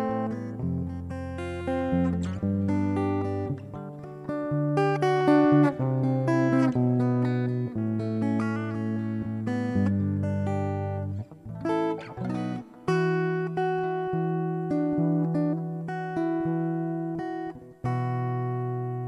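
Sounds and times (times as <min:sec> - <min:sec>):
finger-picked guitar: 0:00.0 - 0:19.0.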